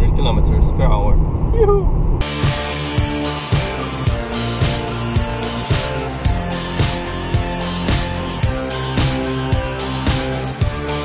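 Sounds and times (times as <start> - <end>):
car cabin road and engine noise: 0.0 - 2.3
rock music with guitar and drums: 2.2 - 11.0.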